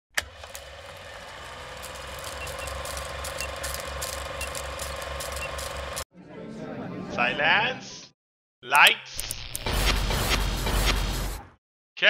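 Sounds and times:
film projector clatter: 0.2 - 6.0
film crackle and pops: 1.6 - 5.1.

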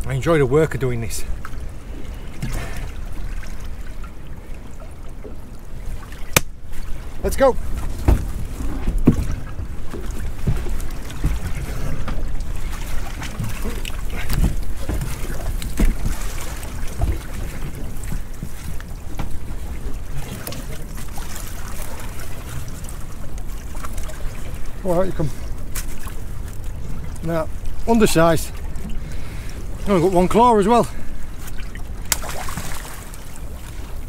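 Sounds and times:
small boat engine rumble: 0.0 - 34.0.

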